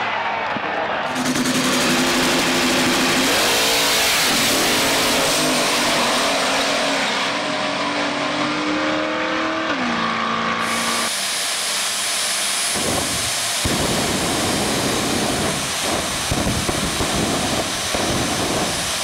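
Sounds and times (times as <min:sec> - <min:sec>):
drag race cars at full throttle: 0:00.0 - 0:19.0
dull rumble: 0:12.8 - 0:19.0.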